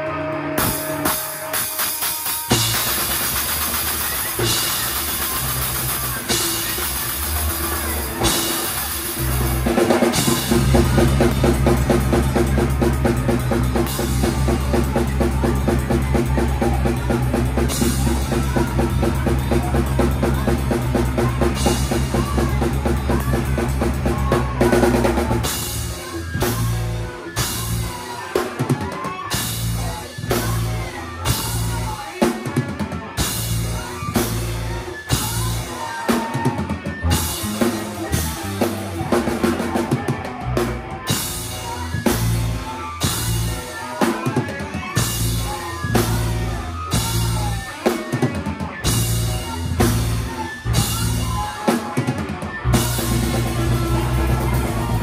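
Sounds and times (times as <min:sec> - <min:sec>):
cymbals crashing: 0:00.6 - 0:15.5.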